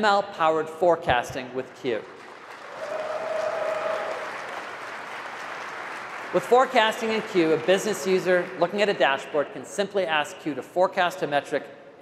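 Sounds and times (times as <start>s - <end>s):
audience applauding: 2.0s - 9.0s.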